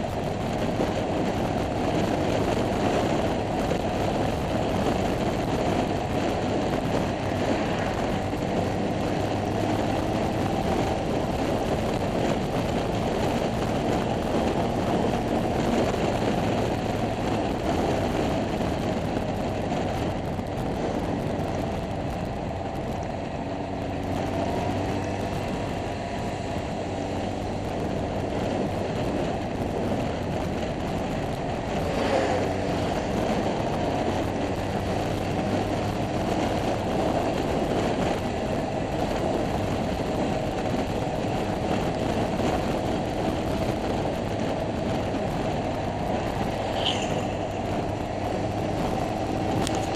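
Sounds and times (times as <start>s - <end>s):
scooter engine running: 0.0s - 49.9s
wind and road noise: 0.0s - 49.9s.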